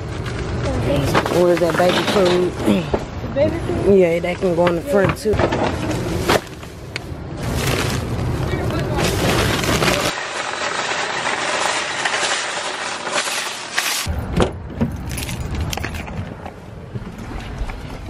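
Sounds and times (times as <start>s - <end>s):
shopping cart rattling on pavement: 0.6s - 2.9s, 7.4s - 14.1s
plastic bags rustling: 5.6s - 14.1s.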